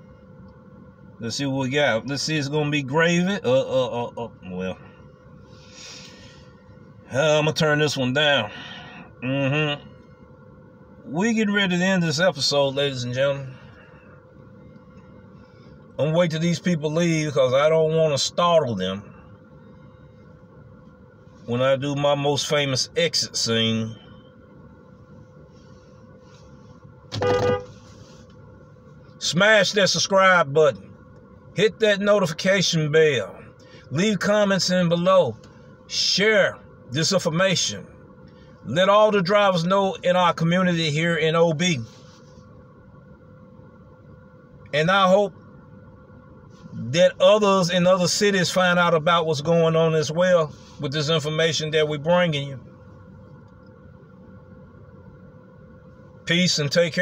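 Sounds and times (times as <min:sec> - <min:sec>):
car interior hum: 0:00.0 - 0:57.0
faint constant tone: 0:00.0 - 0:57.0
car horn honk: 0:27.1 - 0:27.9.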